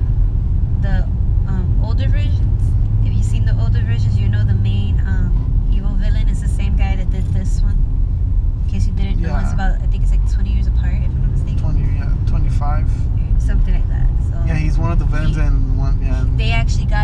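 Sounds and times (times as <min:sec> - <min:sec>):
car cabin road rumble: 0:00.0 - 0:17.0
people talking: 0:00.8 - 0:07.8, 0:08.7 - 0:17.0.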